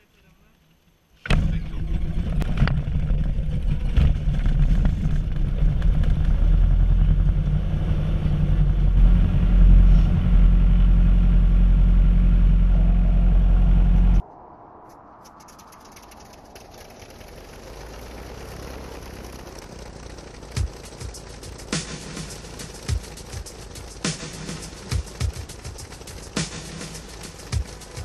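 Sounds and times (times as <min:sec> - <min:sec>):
small plane engine in cabin: 0:01.2 - 0:28.0.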